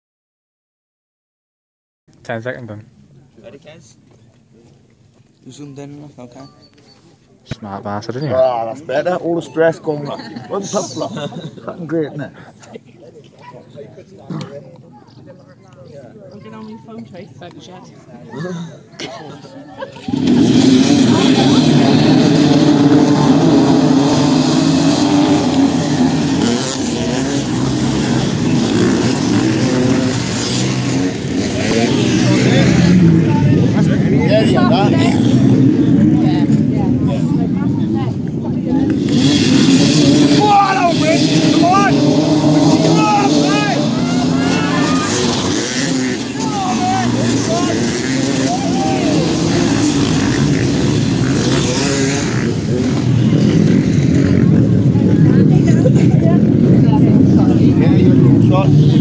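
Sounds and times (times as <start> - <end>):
motorcycles revving and passing: 5.5 - 59.0
people calling out: 39.6 - 52.2.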